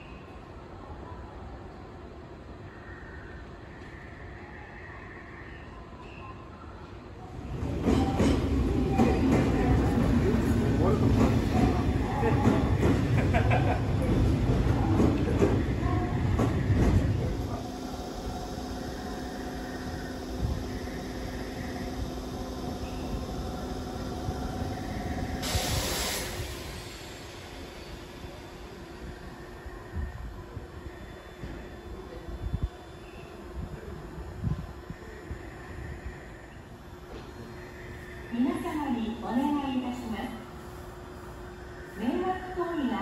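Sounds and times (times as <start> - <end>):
electric train rumbling: 0.0 - 43.0
short burst of hiss: 25.4 - 28.3.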